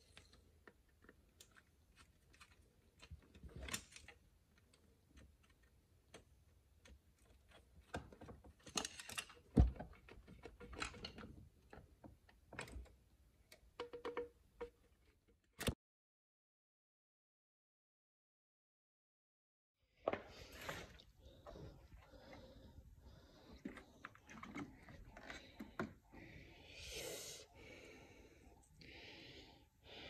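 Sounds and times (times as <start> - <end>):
clicks and taps of tools handled: 13.5 - 14.8.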